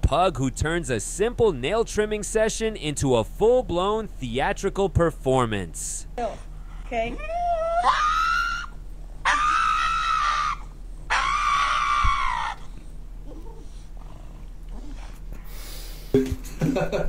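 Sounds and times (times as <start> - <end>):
dog wailing high-pitched: 7.1 - 12.7.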